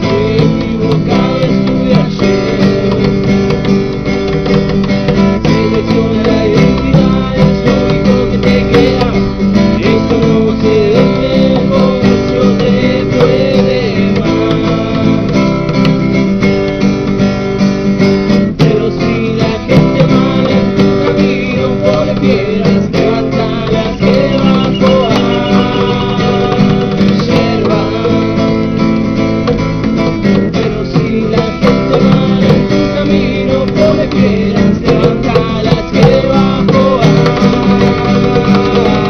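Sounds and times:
man singing: 0:00.0 - 0:03.7, 0:05.1 - 0:16.2, 0:18.5 - 0:29.0, 0:30.1 - 0:39.0
acoustic guitar strumming: 0:00.0 - 0:39.0.

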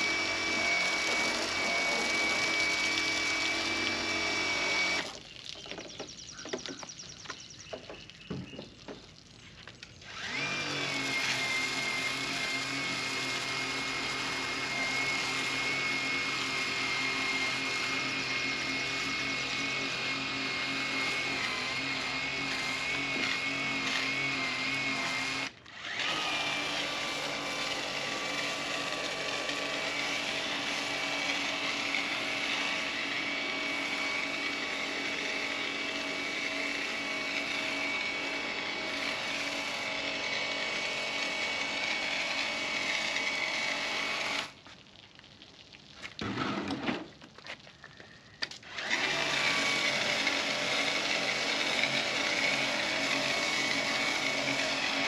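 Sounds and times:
pressure washer motor whine: 0:00.0 - 0:05.2.

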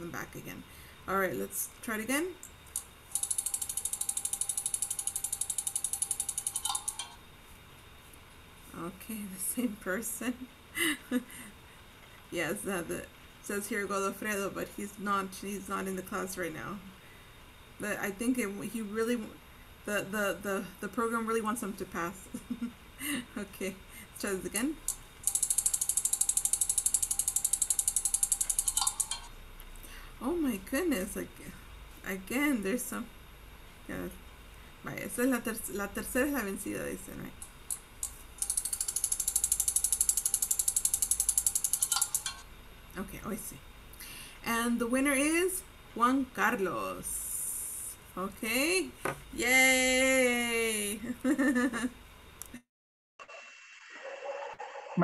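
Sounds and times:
spinning wheel clicking: 0:02.4 - 0:07.2, 0:24.8 - 0:29.3, 0:37.7 - 0:42.4.

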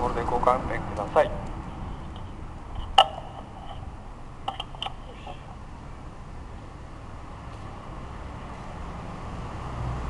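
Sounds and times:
low background rumble: 0:00.0 - 0:09.0.

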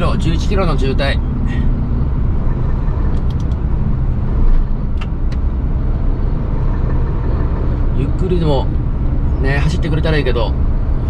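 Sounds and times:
diesel truck engine drone: 0:00.0 - 0:11.0.

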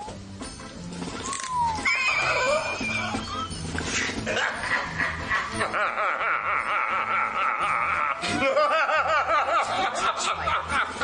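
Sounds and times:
background music: 0:00.0 - 0:11.0
sliding high-pitched animal calls: 0:01.2 - 0:03.7.

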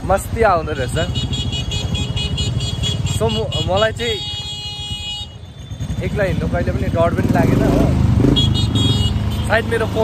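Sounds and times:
motorcycle and vehicle engines: 0:00.0 - 0:10.0
vehicle horn: 0:01.1 - 0:05.6, 0:08.2 - 0:09.6.

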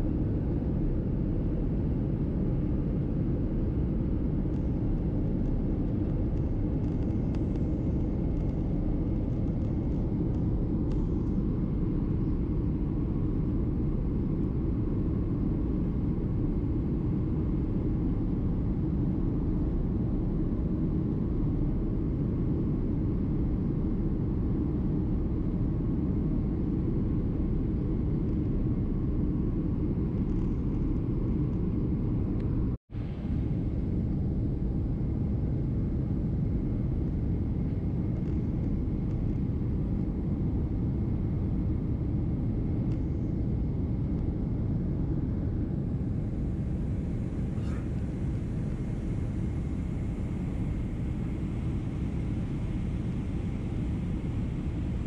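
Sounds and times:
jet engines rumbling: 0:00.0 - 0:55.0.

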